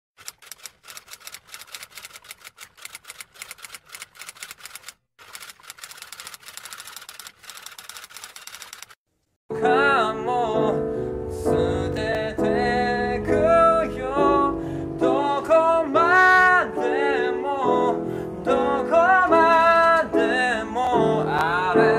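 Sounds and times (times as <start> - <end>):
man singing: 9.5 - 21.9
piano accompaniment: 9.5 - 21.9.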